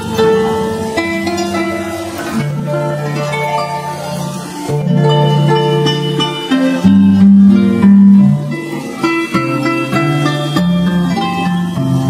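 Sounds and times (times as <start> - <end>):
deep bass harp notes: 0.0 - 11.0
harps plucking melody: 0.0 - 12.0.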